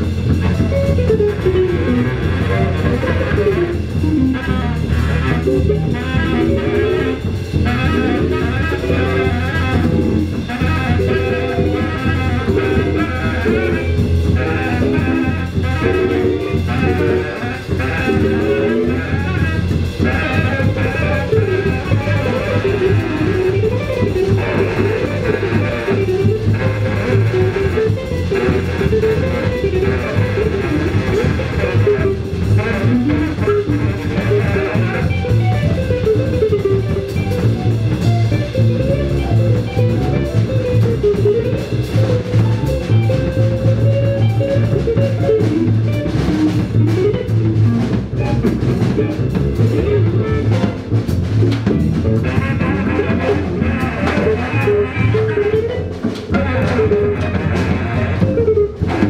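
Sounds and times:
drum kit: 0.0 - 59.0
electric guitar: 0.0 - 59.0
saxophone: 0.0 - 59.0
upright double bass: 0.0 - 59.0.

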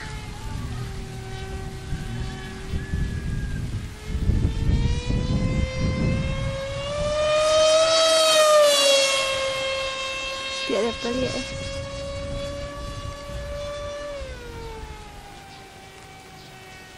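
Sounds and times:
model plane motor whining: 0.0 - 16.9.

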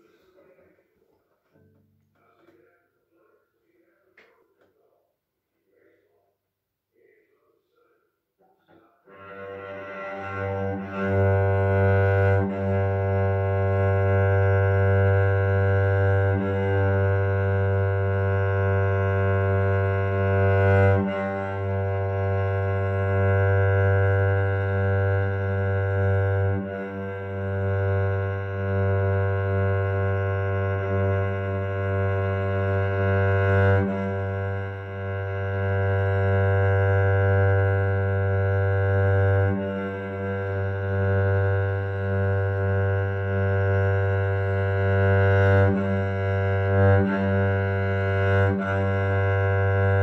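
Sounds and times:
cello low bowed note: 8.7 - 50.0.

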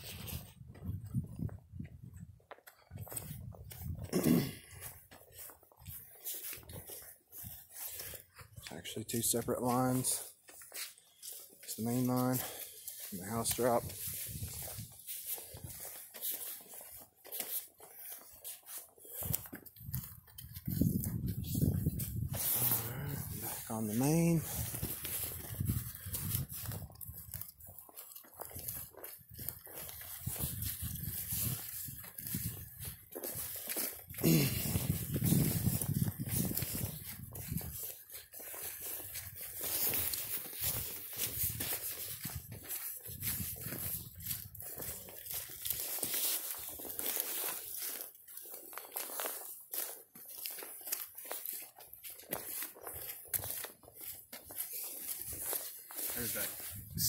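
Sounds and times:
footsteps on grass and dry leaves: 0.0 - 57.0
leaves rustling: 20.5 - 56.9.

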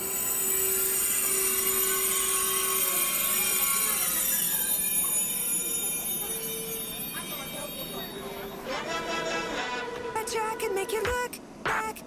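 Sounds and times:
high-pitched wheel and brake squeal: 0.0 - 10.7
train slowing: 0.0 - 11.6.

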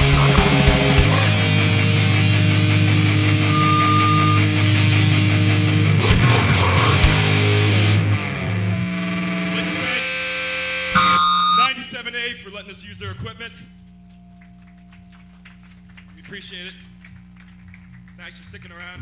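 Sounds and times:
grindcore band playing live: 0.0 - 8.7
ringing guitar notes: 0.0 - 11.8, 13.0 - 15.9.

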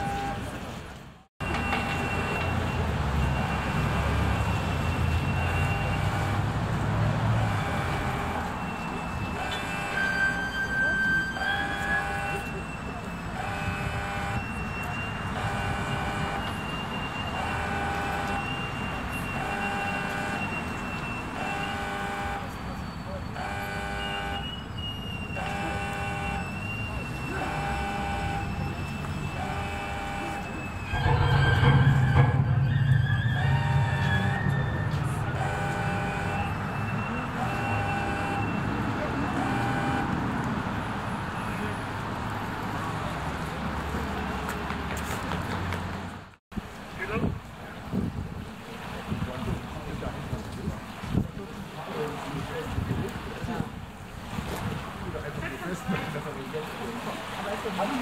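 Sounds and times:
vehicle engine rumbling: 0.0 - 57.7
street noise: 0.0 - 58.0
electronic warning signal: 7.4 - 40.2.

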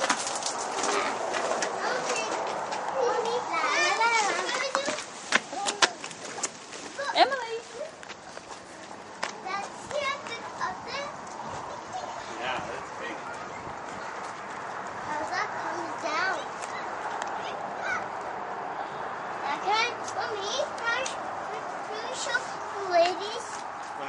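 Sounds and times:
children calling and squealing: 0.6 - 24.0.

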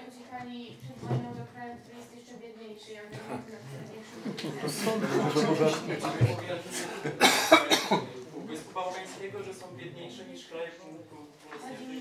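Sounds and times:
man coughing: 6.8 - 8.2.

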